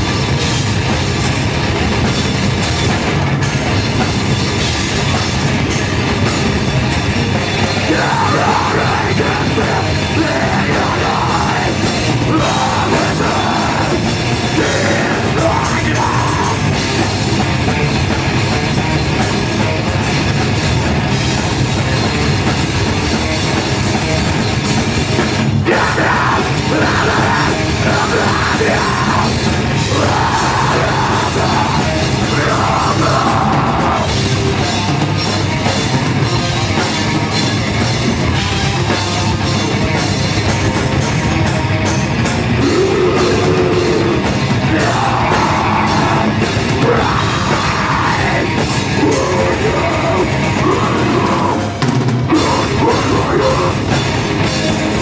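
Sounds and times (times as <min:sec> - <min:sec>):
distorted electric guitars: 0:00.0 - 0:55.0
pounding drum kit: 0:00.0 - 0:55.0.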